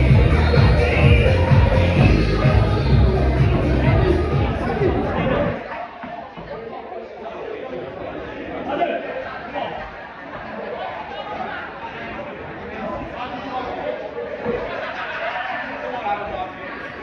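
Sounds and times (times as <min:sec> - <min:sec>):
bass-heavy music: 0:00.0 - 0:05.6
crowd chattering in a hall: 0:00.0 - 0:17.0.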